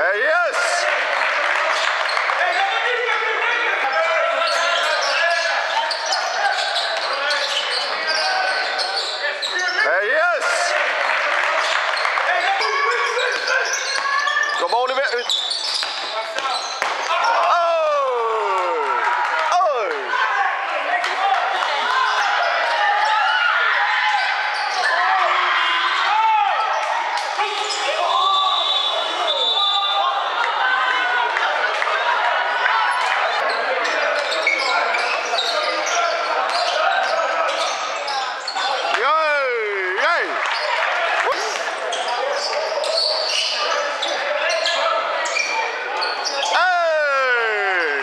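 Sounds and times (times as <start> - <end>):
voices calling out: 0.0 - 48.0.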